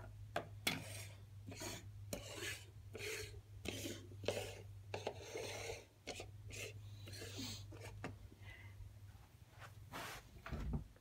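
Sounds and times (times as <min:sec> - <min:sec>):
low steady hum: 0:00.0 - 0:11.0
plastic toys scraping on wood: 0:00.7 - 0:08.0.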